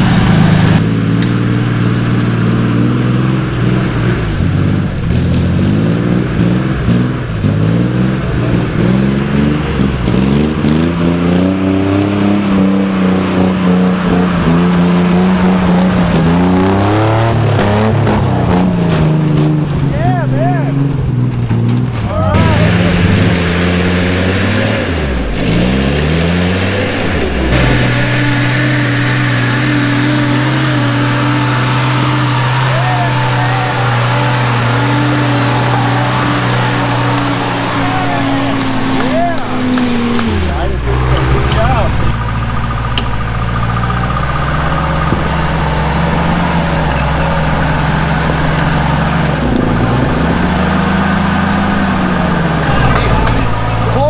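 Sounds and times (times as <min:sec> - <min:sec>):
off-road engines revving: 0:00.0 - 0:54.0.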